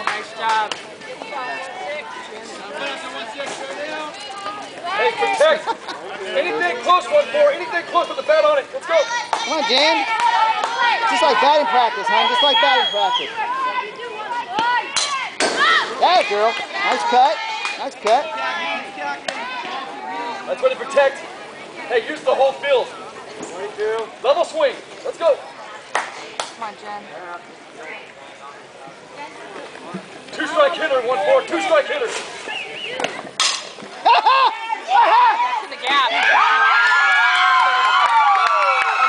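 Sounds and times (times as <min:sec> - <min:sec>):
spectators shouting: 0:01.1 - 0:24.2, 0:30.4 - 0:39.0
bat cracking against ball: 0:33.0 - 0:33.9.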